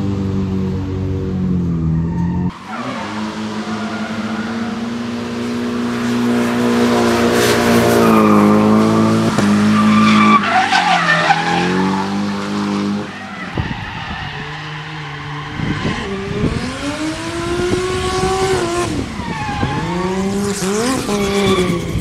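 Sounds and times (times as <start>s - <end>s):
car engine revving high: 2.5s - 22.0s.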